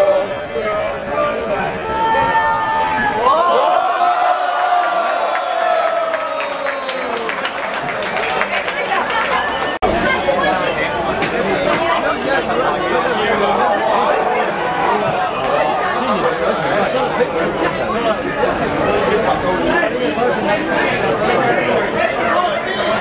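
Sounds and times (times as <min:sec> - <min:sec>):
crowd chatter: 0:00.0 - 0:23.0.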